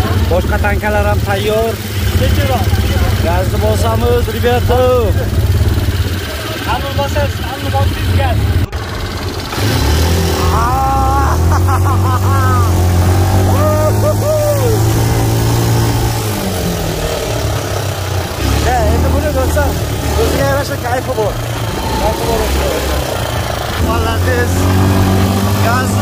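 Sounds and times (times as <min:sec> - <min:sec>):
quad bike engine running: 0:00.0 - 0:26.0
man calling out: 0:10.4 - 0:11.5, 0:13.5 - 0:15.1, 0:21.7 - 0:23.1.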